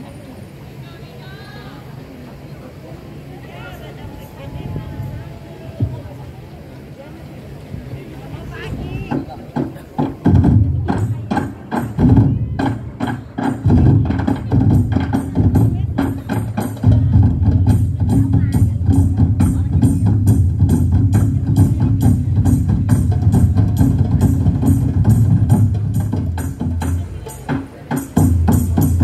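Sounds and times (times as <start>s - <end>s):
barrel drums beaten rhythmically: 9.1s - 29.0s.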